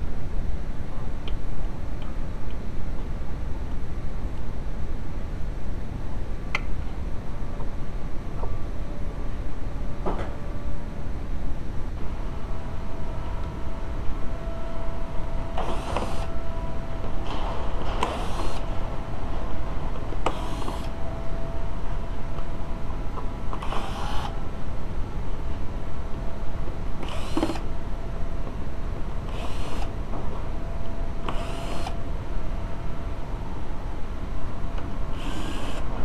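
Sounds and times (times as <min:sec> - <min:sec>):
steady low rumble: 0:00.0 - 0:31.3
steady low hum: 0:00.0 - 0:36.0.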